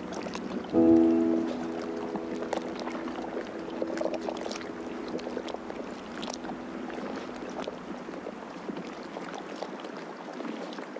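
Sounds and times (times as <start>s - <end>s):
ambient music low chord: 0.0s - 9.1s
water lapping and splashing: 0.0s - 10.9s.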